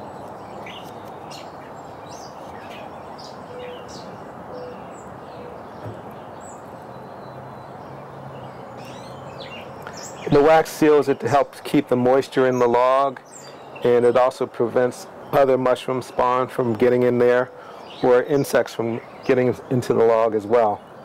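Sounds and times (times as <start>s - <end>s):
outdoor background hiss: 0.0s - 21.0s
small birds chirping: 0.0s - 21.0s.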